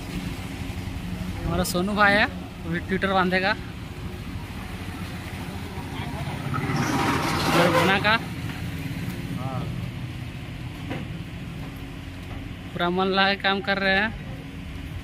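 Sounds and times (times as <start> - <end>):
engine running: 0.0 - 15.0.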